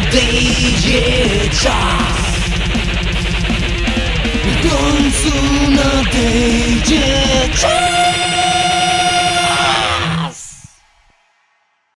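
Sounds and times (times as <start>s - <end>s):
metal band holding final chord: 0.0s - 10.1s
drums: 0.0s - 11.9s.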